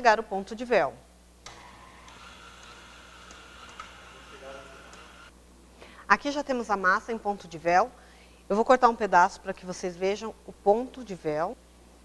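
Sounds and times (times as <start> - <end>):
stand mixer motor whine: 1.5 - 5.3.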